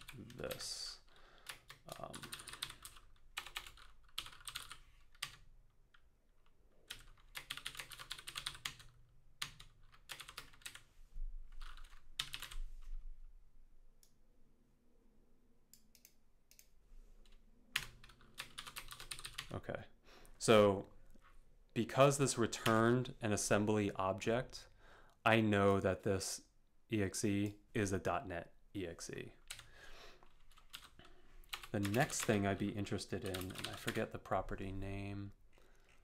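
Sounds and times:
typing on computer keyboard: 1.4 - 10.8, 11.6 - 12.6, 17.8 - 19.5, 29.4 - 32.4, 33.2 - 34.0.

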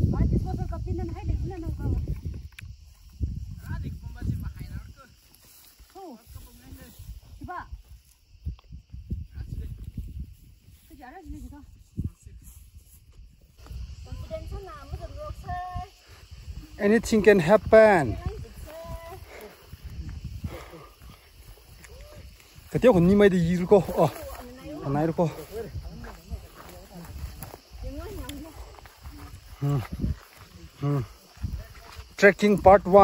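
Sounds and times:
wind buffeting microphone: 0.0 - 5.2, 6.2 - 33.0
people talking: 27.8 - 29.9.

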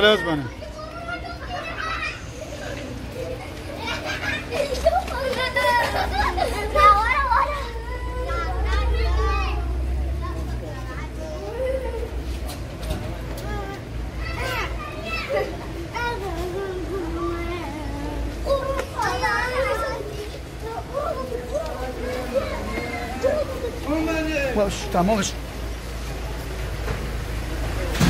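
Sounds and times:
people talking: 0.0 - 12.2, 12.8 - 25.4
children calling out: 0.0 - 24.9.

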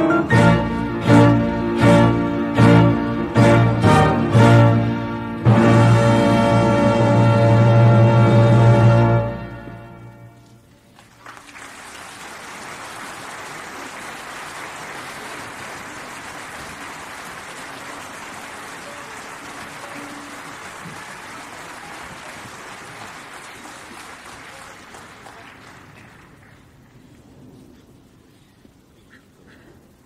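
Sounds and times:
orchestra closing chord: 0.0 - 10.6
audience applauding: 10.9 - 27.1.

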